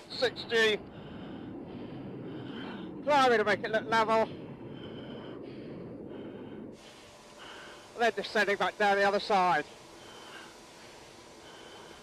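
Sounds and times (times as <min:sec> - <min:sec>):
breathing in oxygen mask: 0:00.8 - 0:03.4, 0:04.0 - 0:12.0
cockpit noise hiss over intercom: 0:07.1 - 0:11.5.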